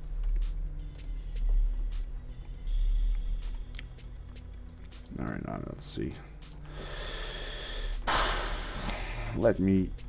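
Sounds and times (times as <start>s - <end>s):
man breathing into microphone: 6.7s - 9.4s.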